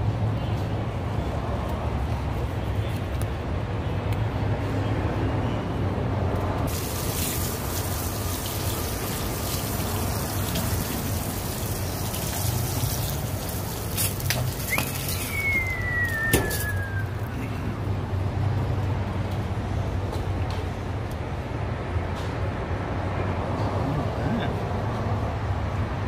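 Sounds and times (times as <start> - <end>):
hose spray hissing onto metal: 6.7 - 15.4
falling whistle-like tone: 14.7 - 17.2.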